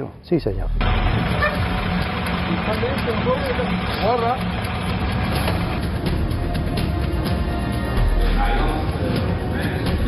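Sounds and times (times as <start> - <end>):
truck engine running: 0.7 - 7.9.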